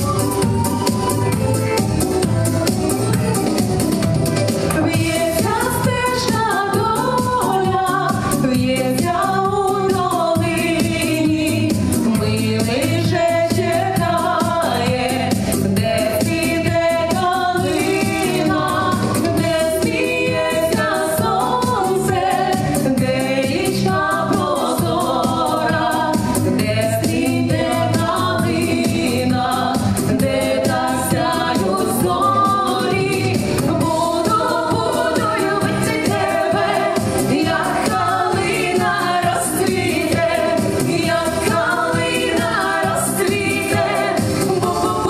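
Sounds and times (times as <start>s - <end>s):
accompaniment with steady beat: 0.0s - 45.0s
women singing into microphones: 4.6s - 45.0s.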